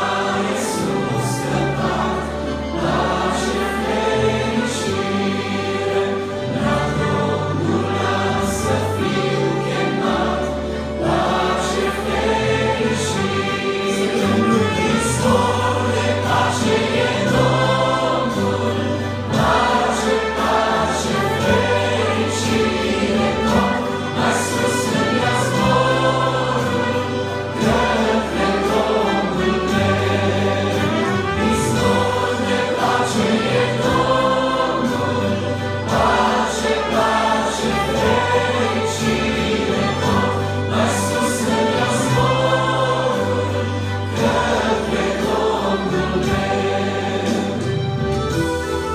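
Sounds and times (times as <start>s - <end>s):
accordion: 0.0s - 48.9s
trumpet: 0.0s - 48.9s
vocal group singing a hymn: 0.0s - 48.9s.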